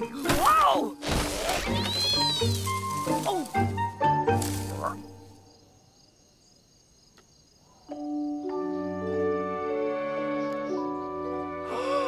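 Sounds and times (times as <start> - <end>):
insects chirring: 0.9 - 12.0.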